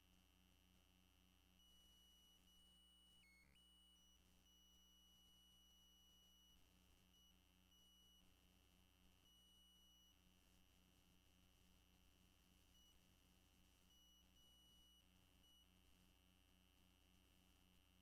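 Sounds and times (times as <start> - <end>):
faint electrical hum: 0.0 - 18.0.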